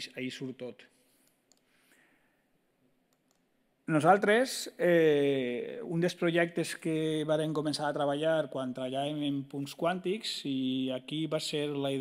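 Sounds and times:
man speaking: 0.0 - 1.0, 3.8 - 12.0.

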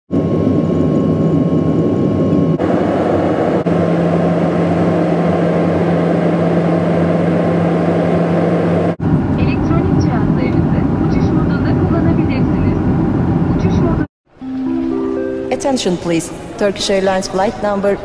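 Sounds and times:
jet engine drone: 0.1 - 14.1
rushing airflow: 0.2 - 11.6.

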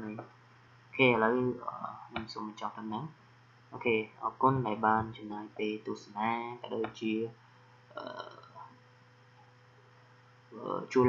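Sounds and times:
man speaking: 0.0 - 0.2, 1.0 - 3.2, 3.8 - 7.3, 7.9 - 8.6, 10.6 - 11.0
low electrical hum: 0.0 - 11.0
throaty vocal sound: 7.9 - 8.7.

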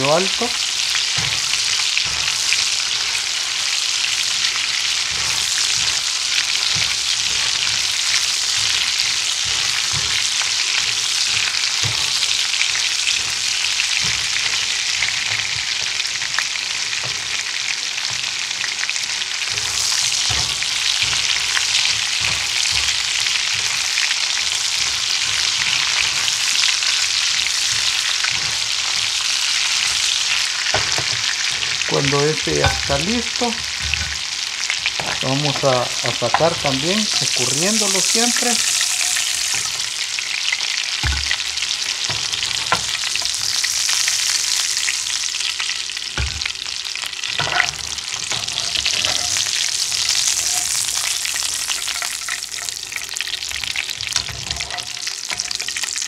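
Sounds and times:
sausage sizzling in a skillet: 0.0 - 56.0
spatula knocking and scraping pan: 0.2 - 44.1, 46.1 - 56.0.

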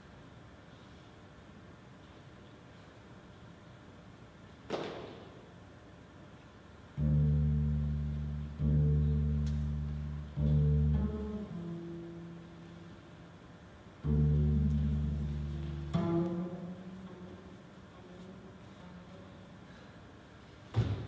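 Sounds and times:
double bass low notes: 7.0 - 13.1, 14.0 - 19.4.

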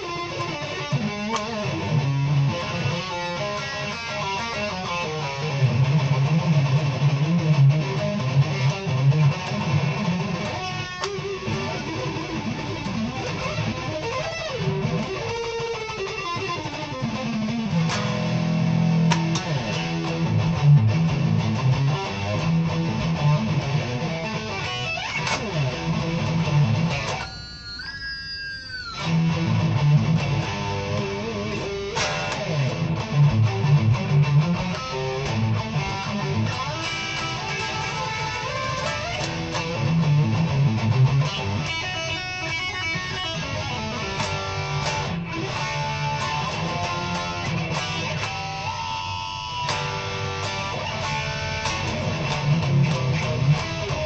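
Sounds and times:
electric guitar solo: 0.0 - 54.0.

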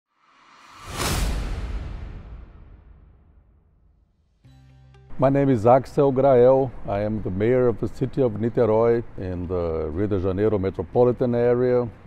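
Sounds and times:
whoosh with low rumble: 0.6 - 3.8.

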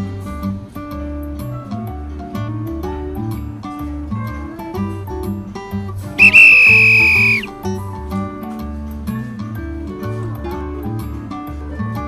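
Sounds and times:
high whistle-like tone: 6.2 - 7.5.

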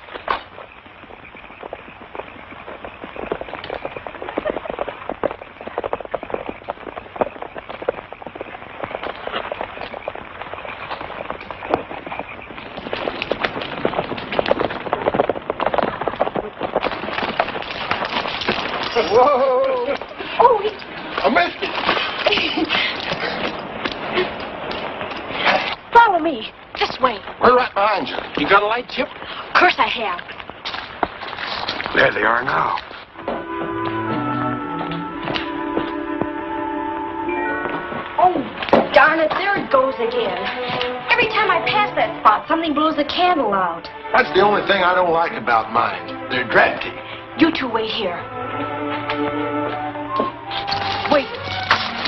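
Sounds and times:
horse hooves clattering on rough ground: 0.0 - 52.0.

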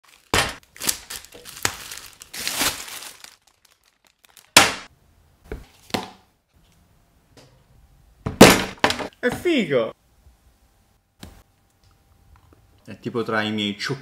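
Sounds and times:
plastic wrapping crinkling and tearing: 0.0 - 4.6.

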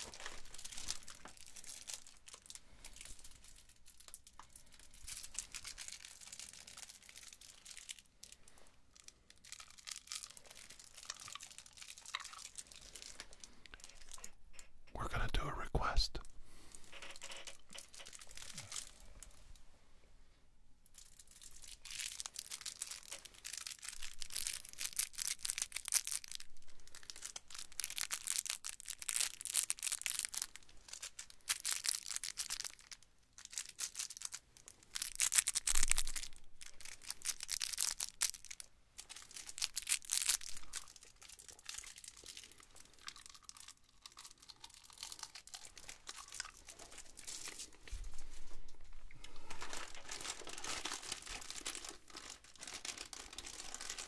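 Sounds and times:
cellophane wrapper crinkling: 0.0 - 14.8, 16.7 - 19.5, 20.8 - 54.0.

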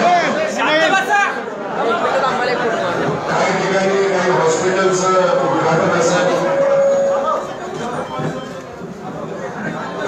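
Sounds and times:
crowd chatter: 0.0 - 10.0
man talking over microphone: 2.4 - 8.4.

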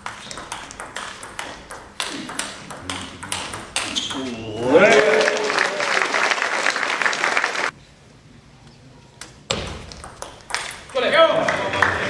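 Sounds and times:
sharp knocks of table tennis play: 0.0 - 4.3, 9.5 - 11.1
spectators applauding and cheering: 4.5 - 7.7, 11.4 - 12.0.

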